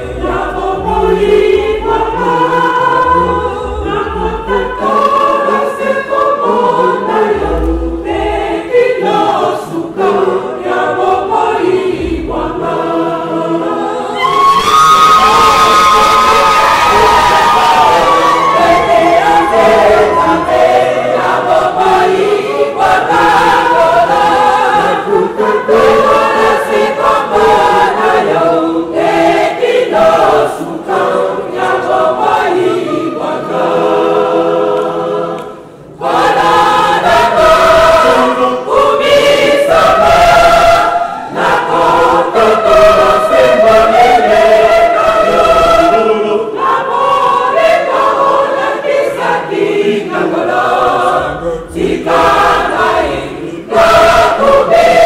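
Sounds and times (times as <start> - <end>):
women's choir singing: 0.0 - 55.0.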